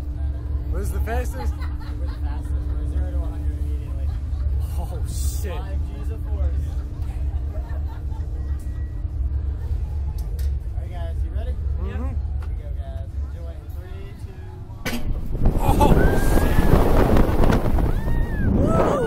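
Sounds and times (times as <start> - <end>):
steady low hum: 0.0 - 19.0
wind rushing over camera: 15.0 - 19.0
riders screaming: 15.6 - 17.1.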